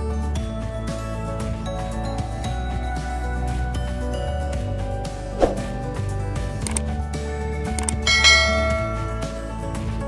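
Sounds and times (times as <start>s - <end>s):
background music: 0.0s - 10.0s
bright bell chime: 8.1s - 9.6s.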